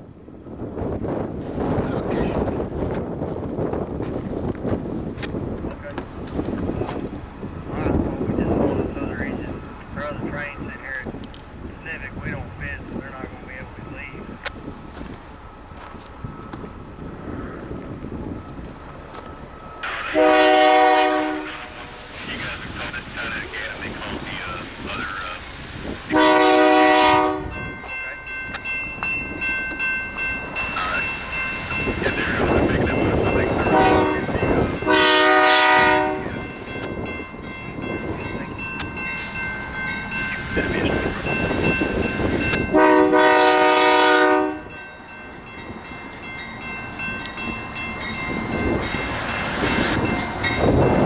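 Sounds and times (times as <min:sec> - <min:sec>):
locomotive rumble: 0:00.0 - 0:51.0
locomotive horn: 0:19.8 - 0:22.4, 0:26.1 - 0:27.6, 0:33.5 - 0:36.4, 0:42.6 - 0:44.8.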